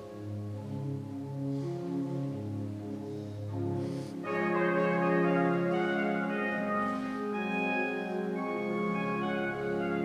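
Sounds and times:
church organ chords: 0.0 - 10.0.

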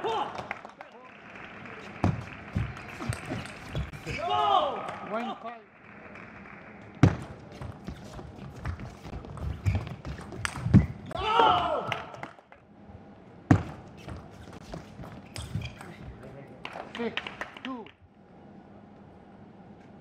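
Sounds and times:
player shouting: 4.1 - 5.4, 11.1 - 12.1.

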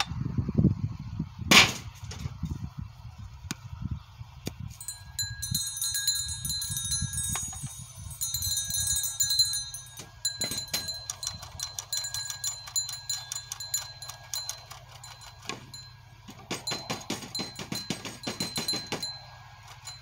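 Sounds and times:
wind rumble on microphone: 0.0 - 20.0
metal chimes ringing: 4.8 - 20.0
clicks and rattles: 9.8 - 20.0.

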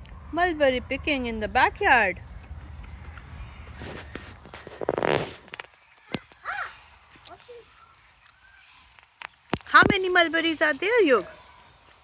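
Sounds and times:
leaves and branches rustling: 1.9 - 12.0.

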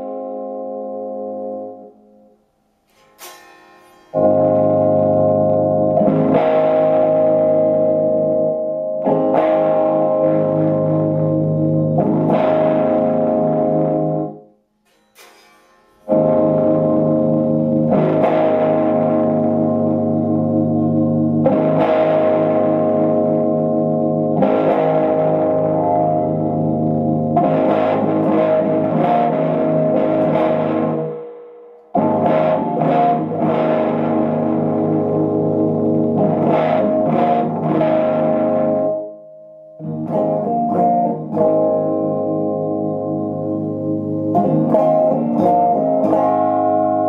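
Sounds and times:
overdriven electric guitar chords: 0.0 - 47.0.

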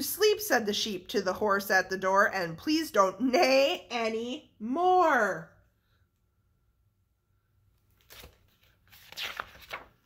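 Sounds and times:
book page rustling: 7.8 - 10.0.

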